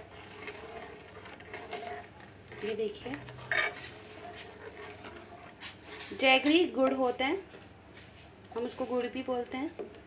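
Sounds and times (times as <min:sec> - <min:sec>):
metal ladle scraping metal pot: 0:00.0 - 0:06.7.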